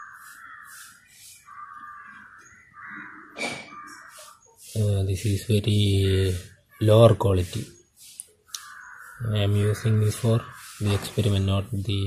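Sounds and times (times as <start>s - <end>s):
bird rasping calls: 0.0s - 4.8s, 6.3s - 11.8s.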